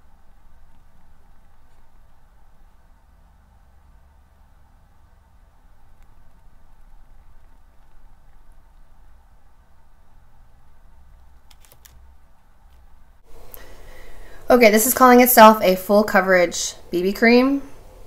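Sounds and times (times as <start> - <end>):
low steady hum: 0.0 - 18.0.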